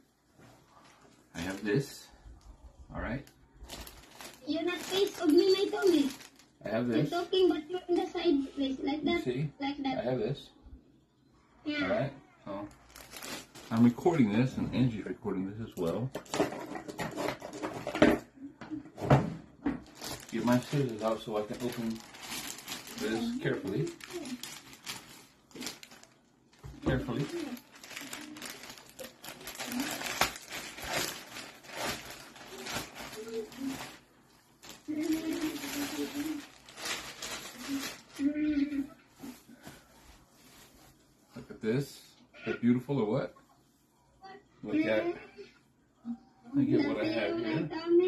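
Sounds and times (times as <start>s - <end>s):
plastic bag crinkling: 3.3s - 7.3s, 12.7s - 14.3s, 19.8s - 38.5s
plastic package rustling: 3.3s - 7.4s, 12.7s - 14.3s, 19.7s - 38.5s.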